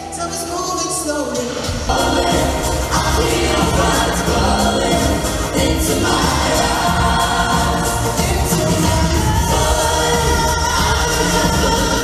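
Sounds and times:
backing track with bass: 0:00.0 - 0:12.0
group singing pop song: 0:00.0 - 0:12.0.

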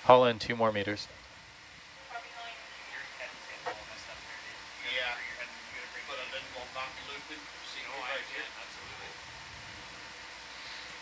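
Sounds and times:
faint radio-like voices: 0:01.9 - 0:09.4.

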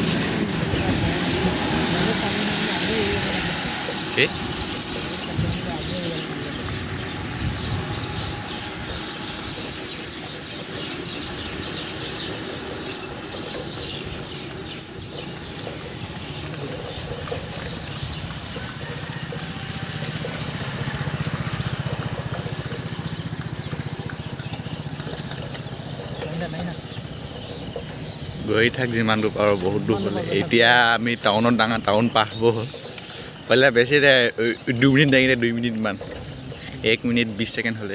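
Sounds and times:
low traffic drone: 0:00.0 - 0:37.9.

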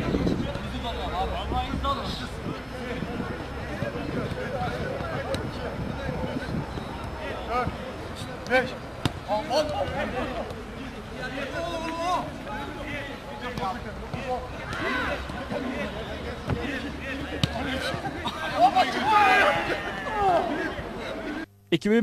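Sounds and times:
players shouting: 0:02.7 - 0:21.4
footballs being kicked: 0:16.4 - 0:18.2.

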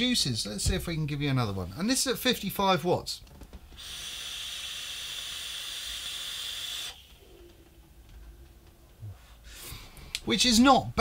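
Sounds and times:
vape hissing: 0:03.8 - 0:07.3
quiet exhale: 0:09.0 - 0:10.2.

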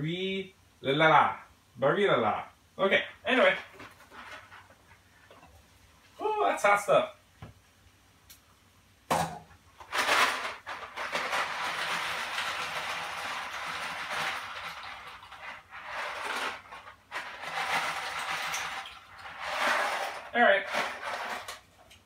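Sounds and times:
dry pasta rattling in cardboard box: 0:09.8 - 0:21.7.

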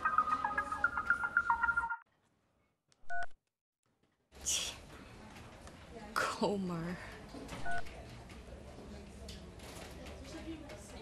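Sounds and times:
telephone keypad beep: 0:03.1 - 0:03.4, 0:07.6 - 0:07.9.

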